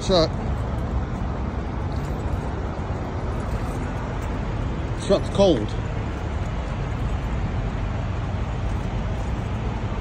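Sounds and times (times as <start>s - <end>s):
diesel truck engines idling: 0.0s - 10.0s.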